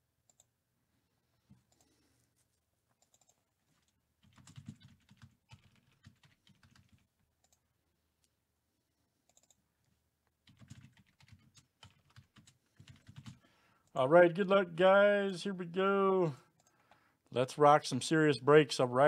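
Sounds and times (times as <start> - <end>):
typing on computer keyboard: 3.0 - 7.6, 9.3 - 9.6, 10.4 - 13.4.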